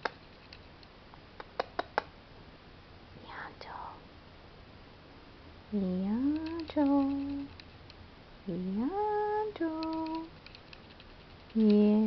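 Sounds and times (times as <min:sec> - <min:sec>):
person whispering: 0:03.2 - 0:04.0.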